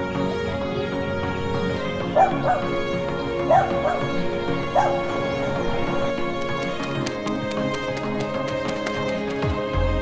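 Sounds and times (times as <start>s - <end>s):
background music: 0.0s - 10.0s
dog barking: 2.2s - 2.8s, 3.4s - 5.1s.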